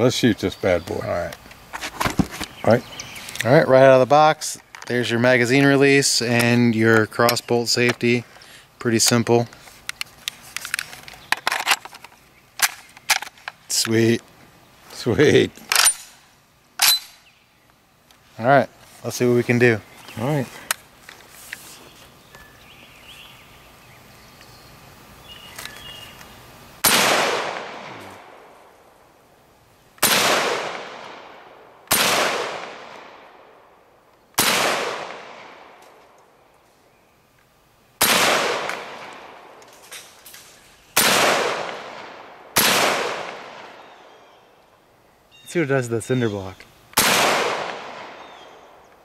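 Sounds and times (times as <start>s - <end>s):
rifle shots with echo: 26.8s - 28.5s, 30.0s - 33.6s, 34.4s - 35.8s, 38.0s - 39.6s, 41.0s - 43.8s, 47.0s - 48.8s.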